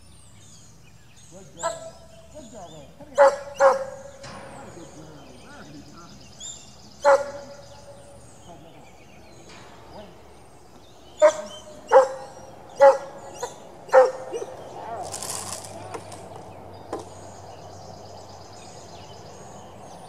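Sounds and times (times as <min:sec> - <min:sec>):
dog barking: 0:01.6 - 0:02.1, 0:03.2 - 0:04.2, 0:07.0 - 0:08.0, 0:11.2 - 0:14.6.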